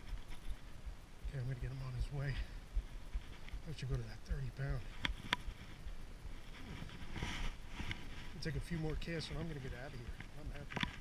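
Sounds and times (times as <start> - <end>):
low rustling: 0.0 - 11.0.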